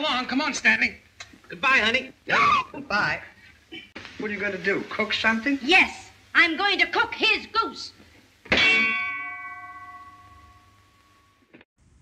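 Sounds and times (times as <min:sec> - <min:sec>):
ringing clang of metal frying pan: 0:08.5 - 0:11.5.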